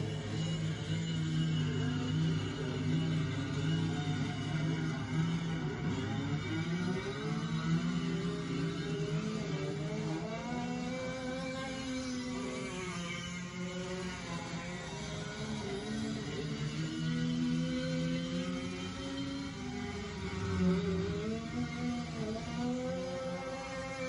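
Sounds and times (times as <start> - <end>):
go-kart engines: 0.0 - 24.0
steady low drone: 0.0 - 24.0.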